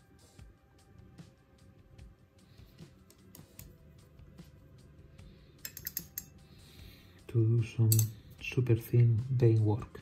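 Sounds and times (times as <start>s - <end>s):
quiet background music: 0.0s - 10.0s
paintbrush clinking on metal tin: 5.6s - 6.3s.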